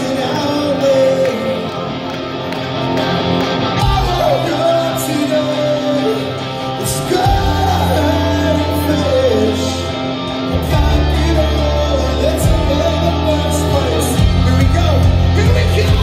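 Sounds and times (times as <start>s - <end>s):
person singing: 0.0s - 2.0s, 3.8s - 16.0s
live rock band playing: 0.0s - 16.0s.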